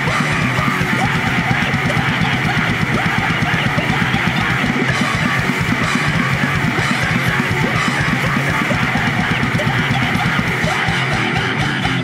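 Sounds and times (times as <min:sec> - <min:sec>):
bass guitar: 0:00.0 - 0:12.0
distorted electric guitars: 0:00.0 - 0:12.0
rapid driving drumming: 0:00.0 - 0:12.0.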